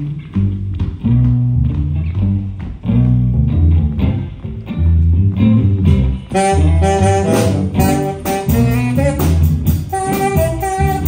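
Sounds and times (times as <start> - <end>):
bass guitar notes: 0.0 - 11.0
electric guitar riff: 0.0 - 11.0
saxophone: 6.2 - 11.0.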